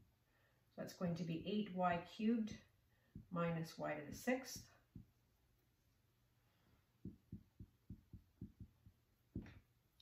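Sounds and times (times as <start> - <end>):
marker knocking on whiteboard: 4.2 - 5.2, 7.0 - 9.7.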